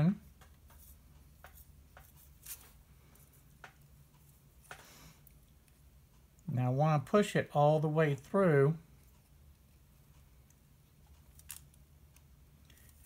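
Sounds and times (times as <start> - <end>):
faint low hum: 0.0 - 13.0
small clicks and scrapes: 0.2 - 6.4, 9.0 - 13.0.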